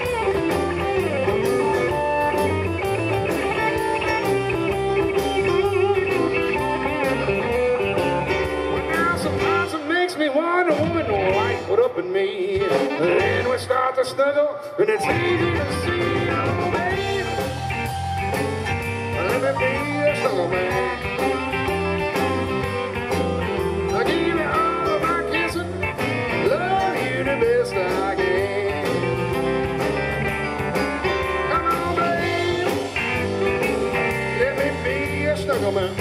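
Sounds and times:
electric guitar: 0:00.0 - 0:13.9, 0:14.6 - 0:36.0
blues-rock band playing: 0:00.0 - 0:36.0
saxophone: 0:12.6 - 0:13.7, 0:15.0 - 0:27.2.

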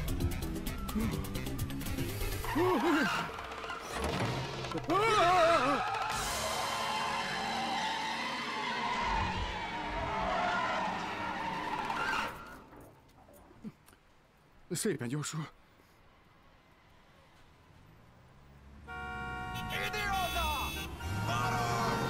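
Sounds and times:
action music: 0:00.0 - 0:03.6
tyres squealing: 0:02.2 - 0:12.8.

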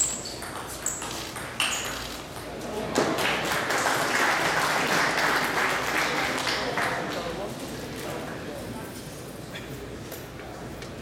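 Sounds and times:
table tennis ball hits: 0:00.0 - 0:03.2.

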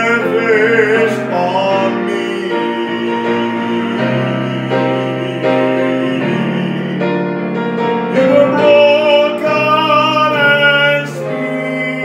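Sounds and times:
person singing long notes: 0:00.0 - 0:07.4, 0:08.1 - 0:12.0
digital piano accompaniment: 0:00.0 - 0:12.0.

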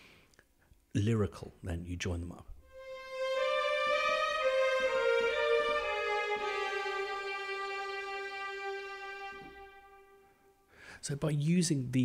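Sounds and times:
legato string melody: 0:02.6 - 0:10.6.

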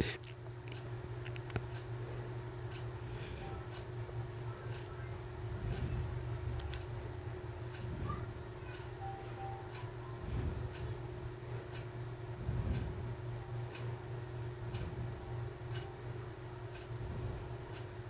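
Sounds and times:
steady low hum: 0:00.0 - 0:18.0
clock ticking: 0:02.6 - 0:18.0.

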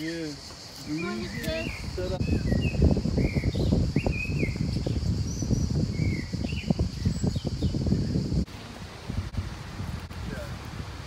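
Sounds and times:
steady high hiss: 0:00.0 - 0:02.3
birds chirping: 0:00.0 - 0:08.9
low rumble on microphone: 0:01.5 - 0:11.0.

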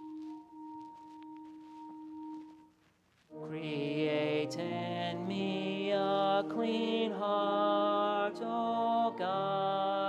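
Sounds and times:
organ playing sustained notes: 0:03.4 - 0:10.0.

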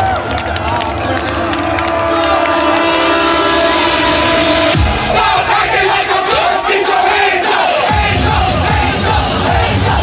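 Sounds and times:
crowd yelling and cheering: 0:00.0 - 0:10.0
electronic dance music: 0:00.7 - 0:10.0
pulsing bass beat: 0:01.0 - 0:07.0, 0:07.8 - 0:10.0.

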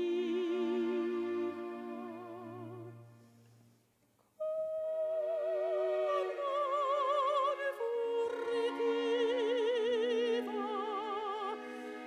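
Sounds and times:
opera singer with vibrato: 0:00.0 - 0:03.0, 0:04.4 - 0:12.0
chamber orchestra: 0:04.4 - 0:12.0.

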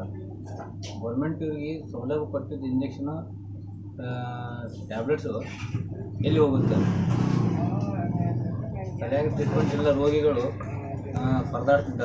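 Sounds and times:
low background hum: 0:00.0 - 0:12.0
man talking: 0:04.0 - 0:05.6, 0:06.2 - 0:07.0, 0:09.2 - 0:10.6, 0:11.2 - 0:12.0.

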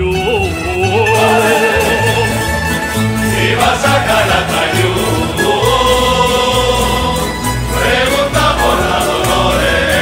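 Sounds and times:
strummed guitars and bandurrias: 0:00.0 - 0:10.0
male chorus singing: 0:00.8 - 0:02.5, 0:03.2 - 0:10.0.

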